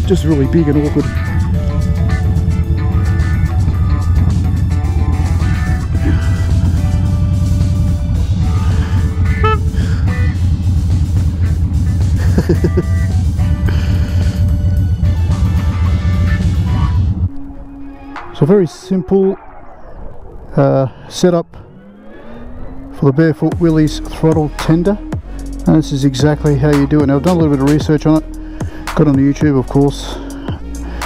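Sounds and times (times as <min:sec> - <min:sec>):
background music with held notes: 0:00.0 - 0:18.8, 0:23.6 - 0:31.0
motorcycle engine droning: 0:00.0 - 0:25.3.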